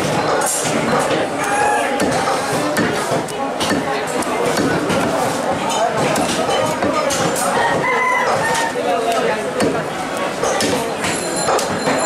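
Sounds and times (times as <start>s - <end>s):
market chatter: 0.0s - 12.0s.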